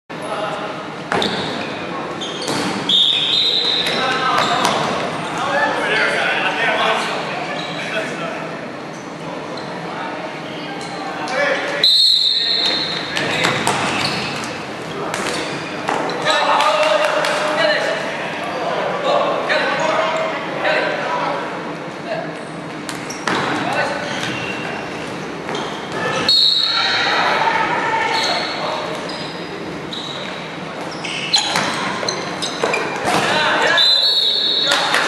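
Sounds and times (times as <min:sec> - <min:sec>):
voices echoing in a hall: 0:00.1 - 0:35.0.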